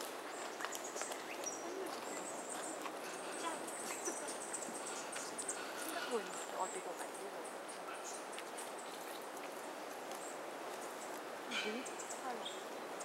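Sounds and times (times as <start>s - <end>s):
faint voices: 0.0s - 8.0s
bird chirps: 0.3s - 9.1s.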